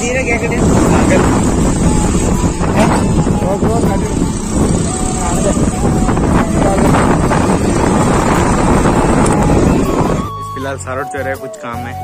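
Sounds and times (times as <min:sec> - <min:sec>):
voices: 0:00.0 - 0:09.9
wind buffeting microphone: 0:00.0 - 0:10.8.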